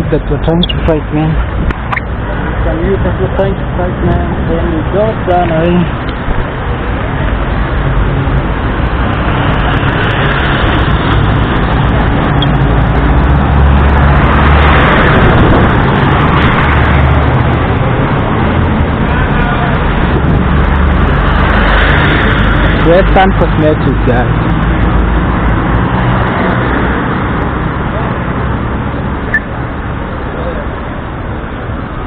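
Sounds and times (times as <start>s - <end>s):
minibus passing: 0.0s - 32.0s
street traffic: 0.0s - 32.0s.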